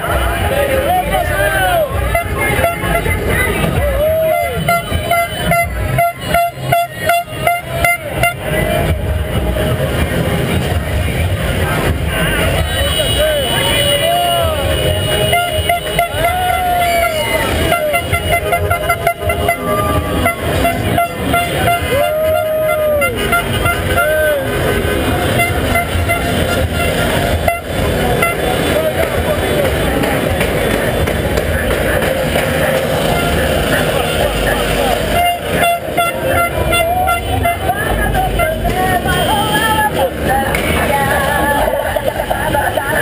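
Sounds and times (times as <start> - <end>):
car horns honking: 0.0 - 43.0
running vehicles: 0.0 - 43.0.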